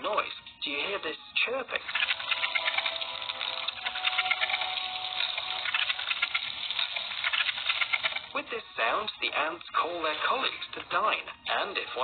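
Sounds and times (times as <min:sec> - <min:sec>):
ants chirping with tiny clicks: 0:01.8 - 0:08.4.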